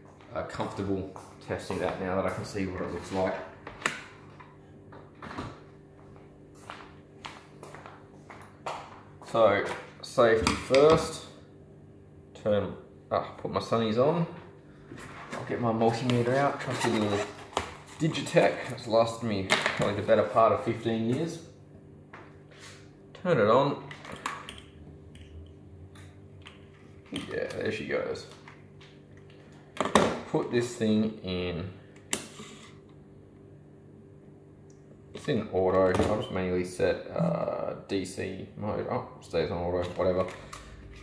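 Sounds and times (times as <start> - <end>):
low electrical hum: 0.0 - 41.0.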